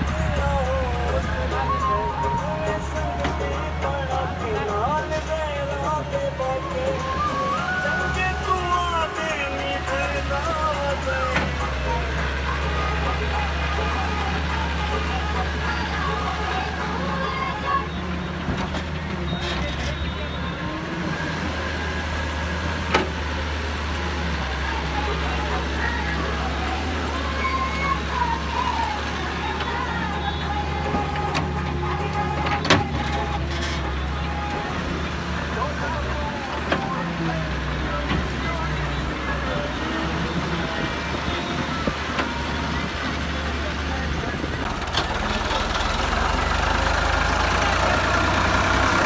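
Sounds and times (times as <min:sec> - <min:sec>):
diesel engine running: 0:00.0 - 0:49.0.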